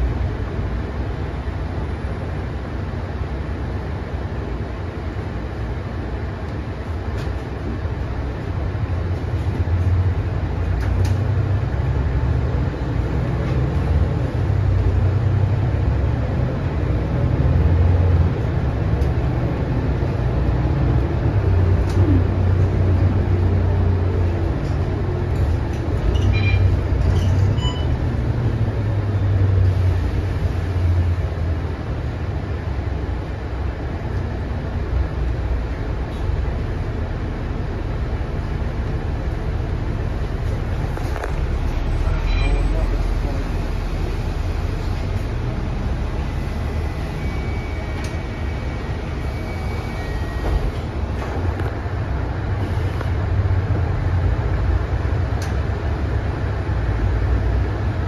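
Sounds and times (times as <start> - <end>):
bus diesel engine running: 0.0 - 58.0
road noise: 0.0 - 58.0.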